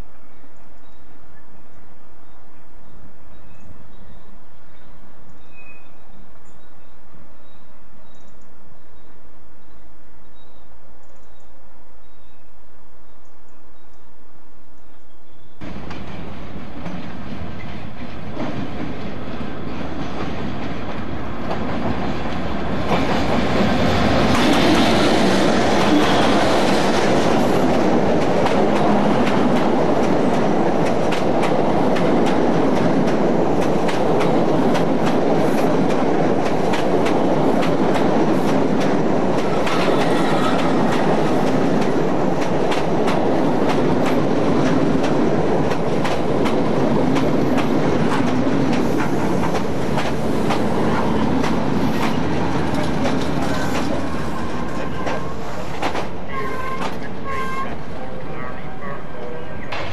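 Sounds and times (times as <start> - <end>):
diesel locomotive passing: 15.3 - 59.9
train wheels rushing on rails: 15.6 - 58.4
wheels clicking over rail joints: 15.7 - 57.4.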